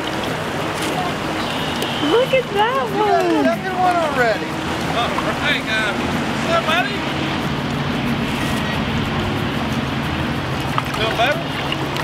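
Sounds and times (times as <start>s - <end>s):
stream running water: 0.0s - 12.0s.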